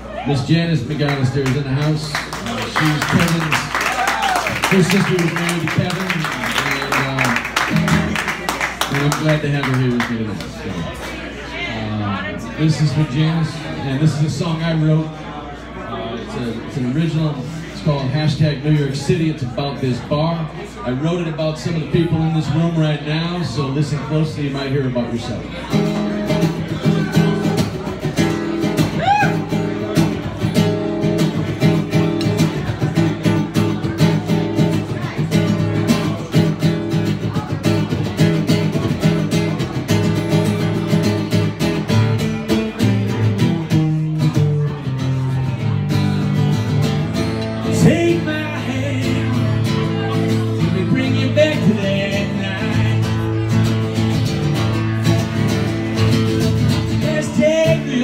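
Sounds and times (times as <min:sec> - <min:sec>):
acoustic guitar strummed: 0:04.7 - 0:08.3, 0:25.6 - 0:58.0.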